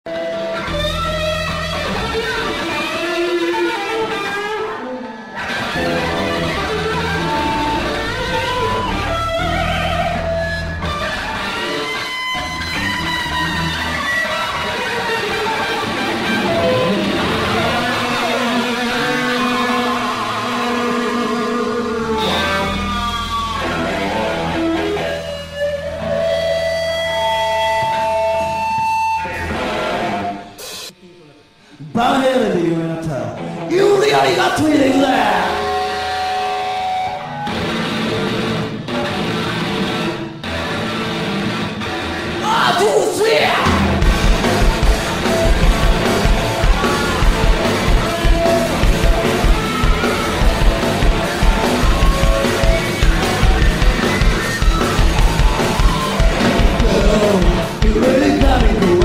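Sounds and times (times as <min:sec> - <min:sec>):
live rock band: 0:00.1 - 0:30.9, 0:33.2 - 0:59.0
distorted electric guitar lead: 0:00.1 - 0:59.0.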